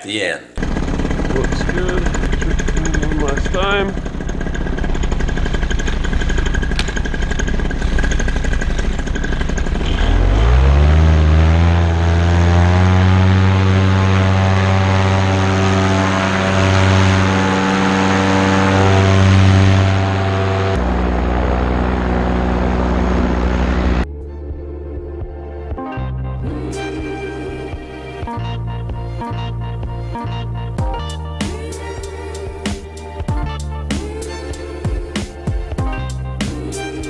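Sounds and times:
paramotor engine and propeller: 0.6s - 24.1s.

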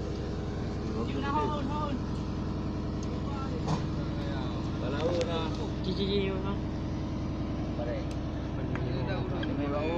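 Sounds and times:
boat engine humming: 0.0s - 9.9s.

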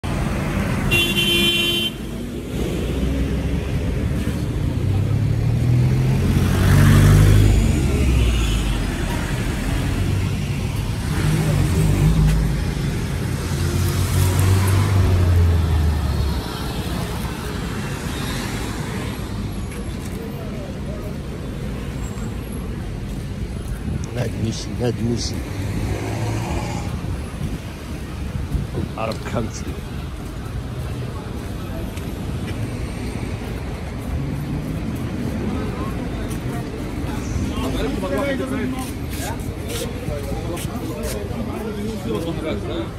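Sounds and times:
car engines passing: 0.0s - 42.9s
car horn toot: 0.9s - 2.1s.

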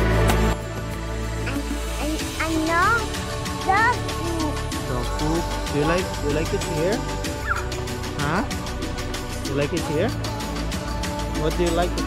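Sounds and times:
background music: 0.0s - 12.0s
toddler squeaking and calling: 7.4s - 7.7s.

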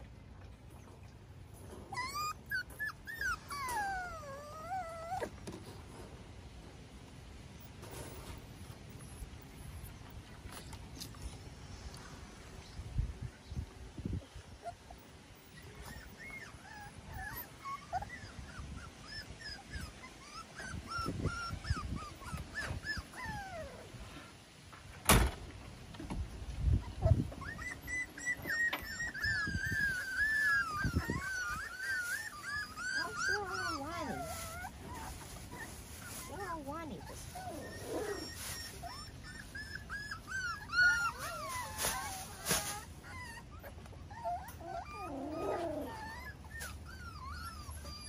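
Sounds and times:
puppies whimpering: 1.8s - 5.5s, 14.6s - 24.2s, 26.8s - 48.0s.

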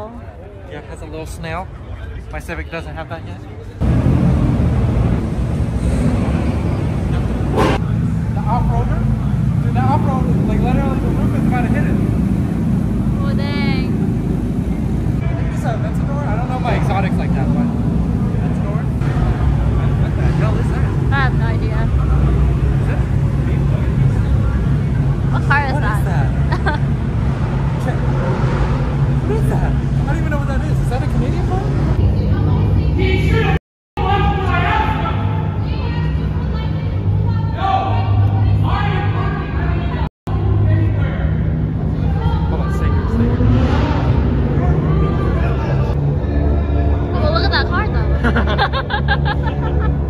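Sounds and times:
car engines rumbling: 0.0s - 50.0s
onlookers talking: 0.0s - 50.0s.

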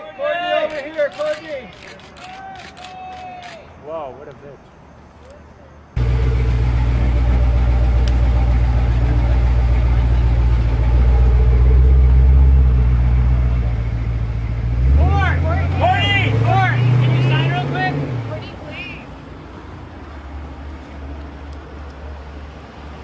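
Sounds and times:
vehicle engine running: 6.0s - 18.5s
voices: 14.9s - 19.2s.

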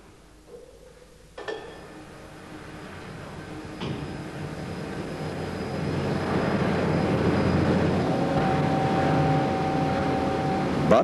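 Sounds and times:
steady mechanical whine: 0.0s - 11.0s
lift machinery rumbling: 1.4s - 11.0s.

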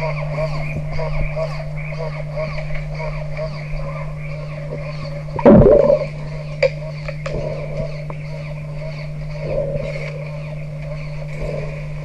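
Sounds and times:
steady low hum: 0.0s - 12.0s
rumbling noise: 5.4s - 6.2s.

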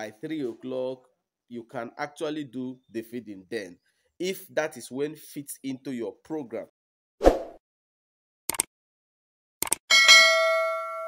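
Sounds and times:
bell-like ding: 9.9s - 11.0s.

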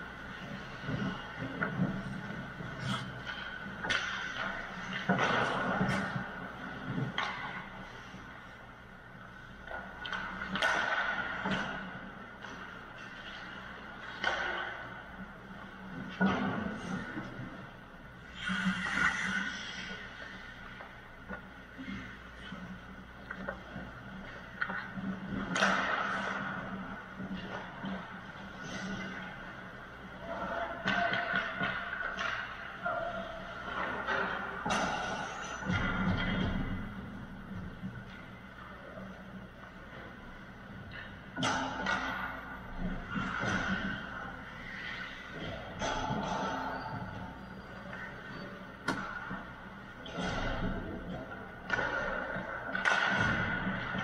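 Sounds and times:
hockey sticks and puck knocks: 0.6s - 8.2s, 9.7s - 14.9s, 23.2s - 28.1s, 30.6s - 32.8s, 40.8s - 47.2s, 48.8s - 54.0s
skate blades scraping ice: 18.3s - 20.8s.

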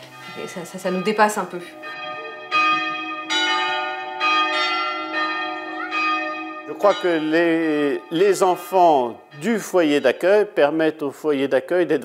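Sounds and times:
church bells ringing: 0.0s - 11.4s.

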